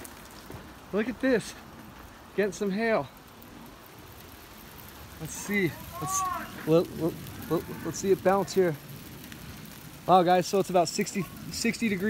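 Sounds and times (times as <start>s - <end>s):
hail and drizzle on a car: 0.0s - 12.0s.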